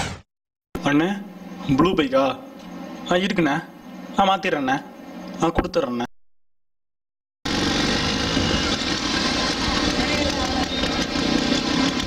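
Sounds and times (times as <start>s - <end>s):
motorcycle engine idling: 7.5s - 12.0s.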